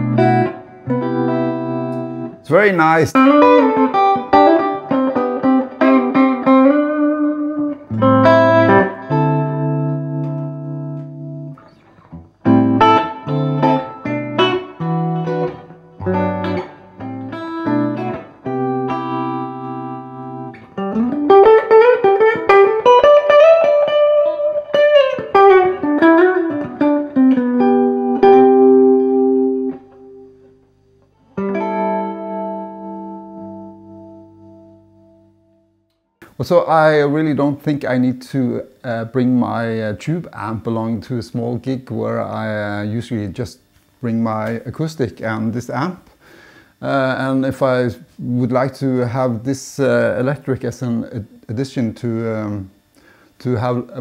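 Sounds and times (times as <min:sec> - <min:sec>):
clean electric guitar playing: 0:00.0 - 0:36.4.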